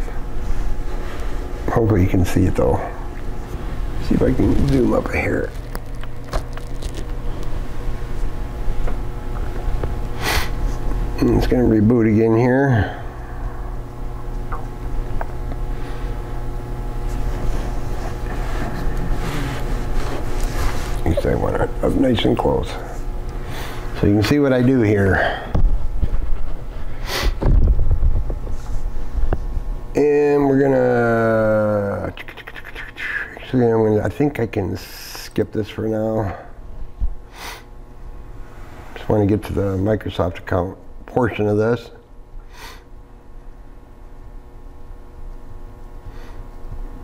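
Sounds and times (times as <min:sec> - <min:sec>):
continuous low rumble: 0:00.0 - 0:47.0
low room hum: 0:00.0 - 0:47.0
man sniffing: 0:10.2 - 0:10.6, 0:18.2 - 0:21.0, 0:27.0 - 0:27.4, 0:37.3 - 0:37.7, 0:42.5 - 0:42.9.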